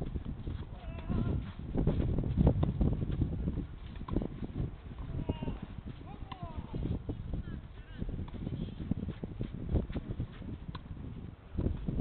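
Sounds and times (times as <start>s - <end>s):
wind on microphone: 0.0s - 12.0s
tennis racket hitting ball: 6.1s - 6.6s.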